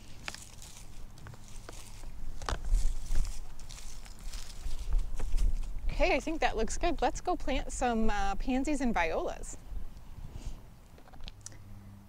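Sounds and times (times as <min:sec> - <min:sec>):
rustling and crunching of mulch: 0:00.0 - 0:08.4
wind rumble on microphone: 0:01.7 - 0:10.5.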